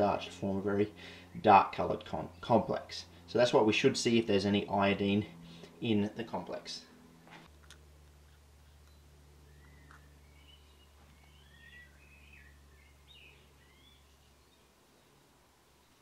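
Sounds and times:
faint low hum: 0:00.0 - 0:16.0
faint bird chirps: 0:08.7 - 0:16.0.

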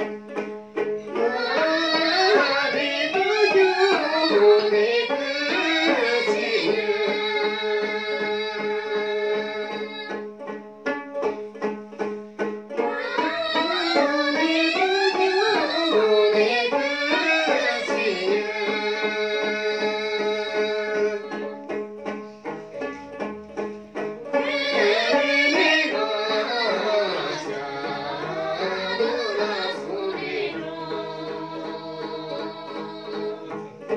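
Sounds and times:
lute strumming: 0:00.0 - 0:33.9
women singing together: 0:01.2 - 0:10.1, 0:12.9 - 0:21.5, 0:24.4 - 0:33.6.

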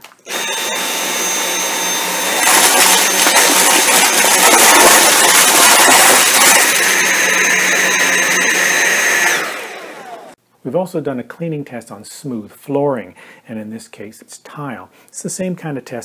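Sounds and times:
vacuum cleaner motor whine: 0:00.0 - 0:10.4.

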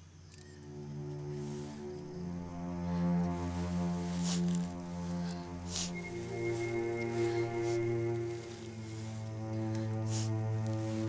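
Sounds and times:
background music of held chords: 0:00.2 - 0:11.0.

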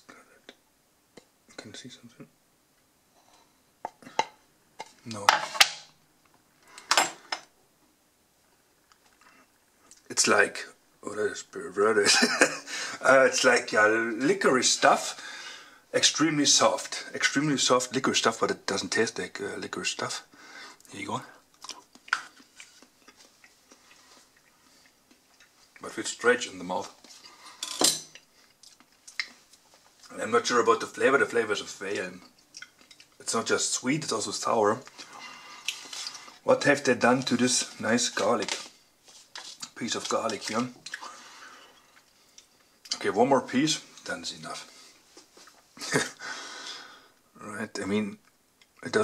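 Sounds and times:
faint wet chewing: 0:21.5 - 0:25.8, 0:26.9 - 0:30.1, 0:32.2 - 0:33.2, 0:34.8 - 0:36.4, 0:38.6 - 0:43.0
faint handling sounds: 0:34.1 - 0:43.1.

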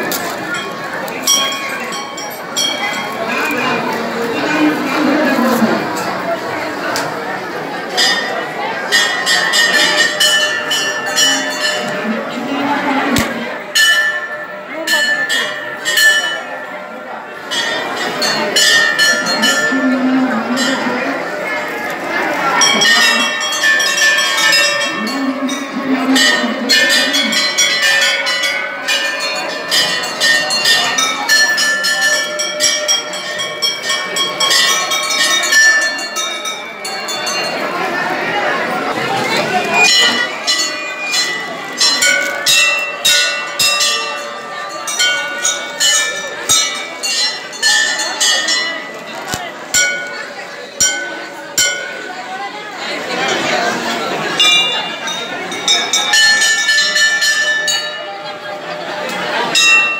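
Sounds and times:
crowd chatter: 0:00.0 - 0:59.9
temple bell ringing: 0:00.0 - 0:59.9.

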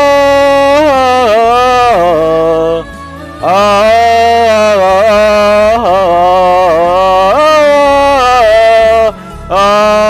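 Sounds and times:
backing music: 0:00.0 - 0:10.0
person singing a long high note: 0:00.0 - 0:10.0.

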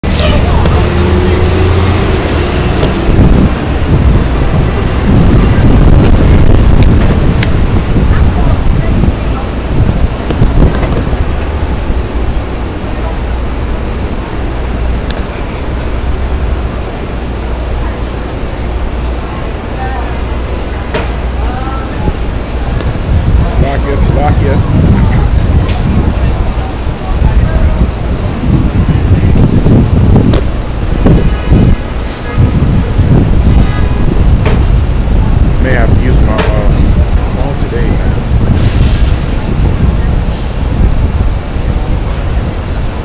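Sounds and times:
city street traffic rumble: 0:00.0 - 0:43.0
vehicles passing: 0:00.0 - 0:43.0
wind buffeting microphone: 0:00.0 - 0:43.0.

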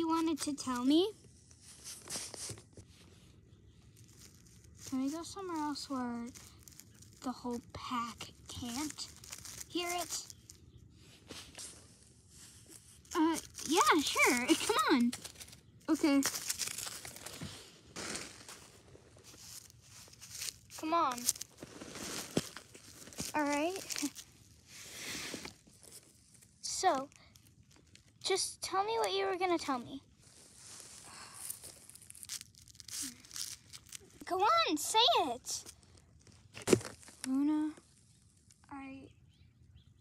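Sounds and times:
rustling of snow and dry leaves: 0:00.1 - 0:38.6.

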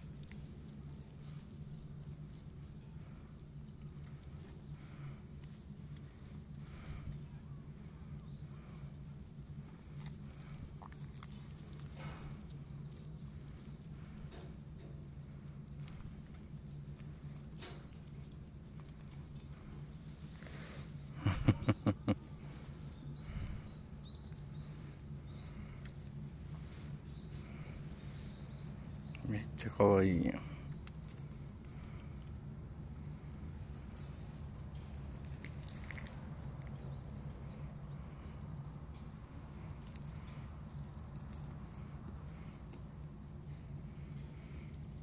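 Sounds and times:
steady low hum: 0:00.0 - 0:45.0
goat tearing and chewing grass: 0:09.5 - 0:21.1, 0:33.0 - 0:37.4, 0:38.9 - 0:45.0.

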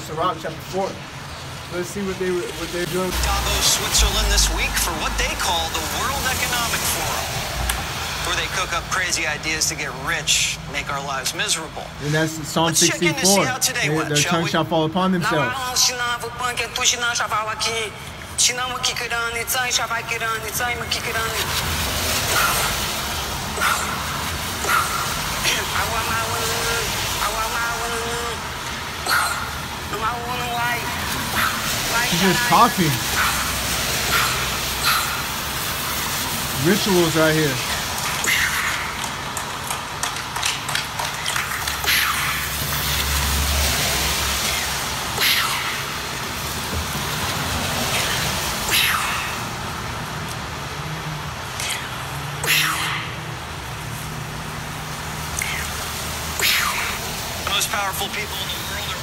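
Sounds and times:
traffic on wet street: 0:00.0 - 0:59.0
voice chanting through phone speaker: 0:11.7 - 0:16.7, 0:23.6 - 0:35.4, 0:36.4 - 0:39.0.

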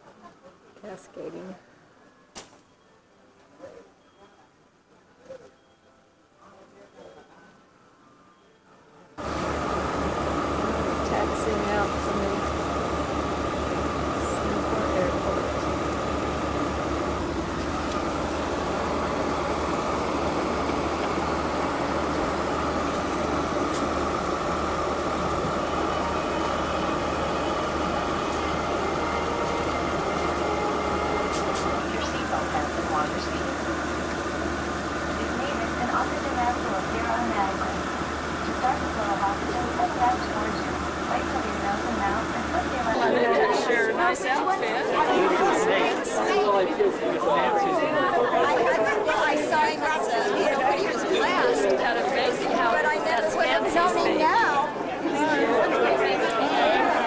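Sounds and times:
steady low cabin hum: 0:09.2 - 0:43.7
indistinct voices: 0:09.2 - 0:57.0.

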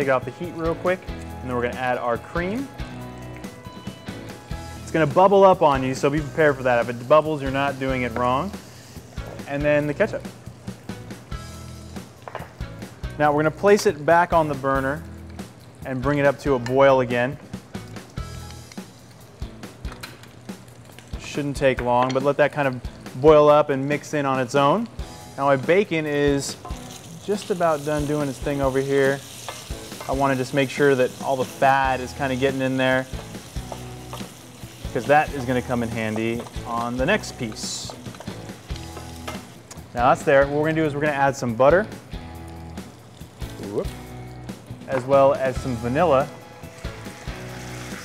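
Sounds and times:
soft background music: 0:00.0 - 0:48.0
utensil knocking a saucepan: 0:35.0 - 0:39.4.

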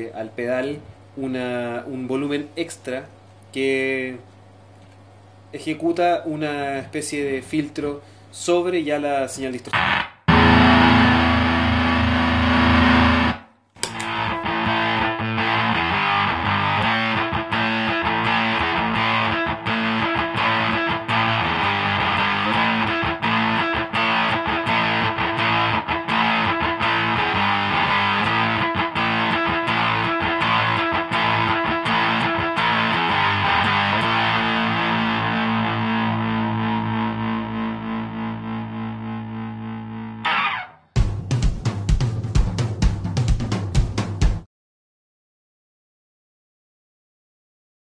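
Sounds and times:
distorted electric guitar riff: 0:09.6 - 0:41.3
fuzzed electric guitar note: 0:09.8 - 0:40.9.

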